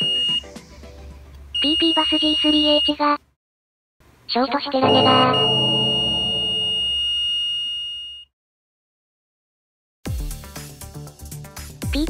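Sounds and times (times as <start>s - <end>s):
dramatic held chord sting: 4.8s - 7.0s.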